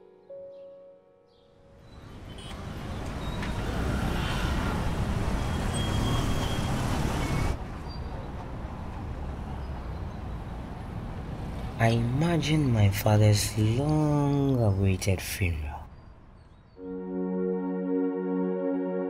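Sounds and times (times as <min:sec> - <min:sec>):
rumble of passing vehicles: 0:01.7 - 0:15.0, 0:15.6 - 0:16.8.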